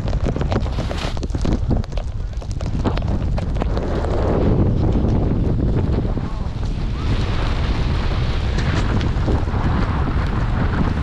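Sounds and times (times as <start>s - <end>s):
snowboard sliding over snow: 0.0s - 11.0s
wind buffeting microphone: 0.0s - 11.0s.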